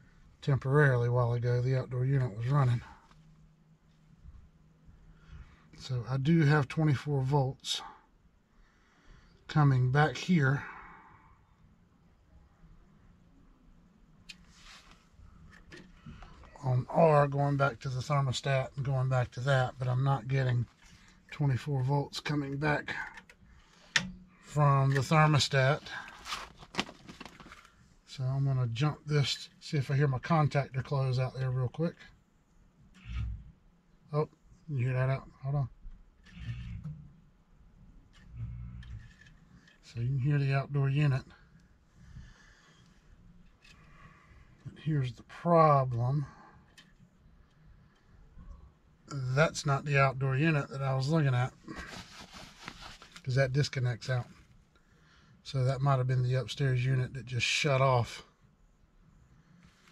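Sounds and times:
faint low hum: 0.0s - 59.9s
small clicks and rustles: 26.0s - 27.8s, 38.0s - 39.9s.

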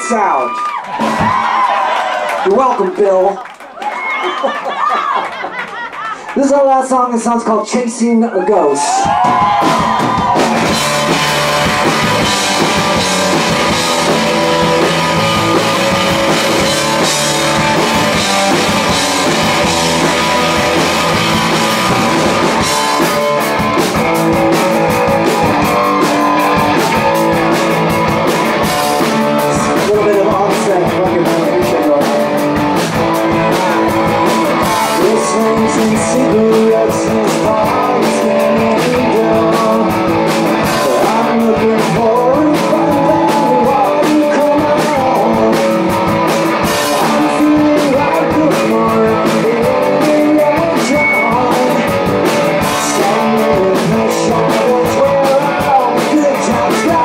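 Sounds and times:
drums: 0.0s - 57.0s
electric guitars: 8.8s - 57.0s
bass guitar: 8.9s - 57.0s
man singing: 29.0s - 57.0s.

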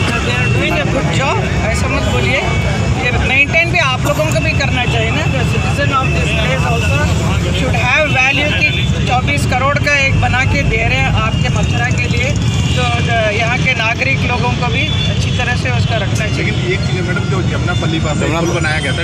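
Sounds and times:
people talking: 0.0s - 19.0s
road traffic rumble: 0.0s - 19.0s.

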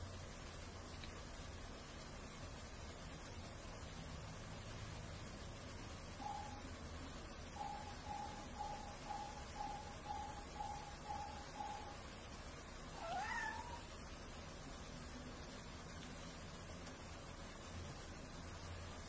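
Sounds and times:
cat mewing: 12.9s - 13.9s.

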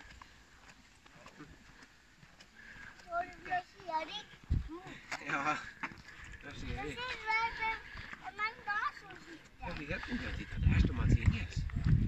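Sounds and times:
low rumbling on microphone: 10.4s - 12.0s.

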